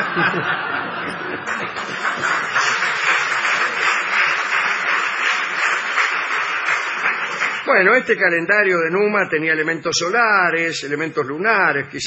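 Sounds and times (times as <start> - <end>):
audience laughing: 0.0 - 6.5.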